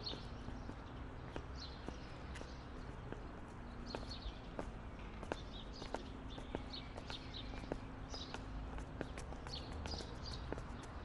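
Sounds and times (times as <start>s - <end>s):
footsteps on stone steps: 0.0s - 11.0s
small birds chirping: 0.0s - 11.0s.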